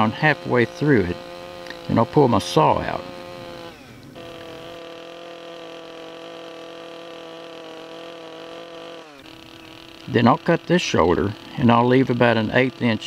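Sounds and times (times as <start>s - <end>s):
chainsaw cutting log: 0.0s - 13.0s.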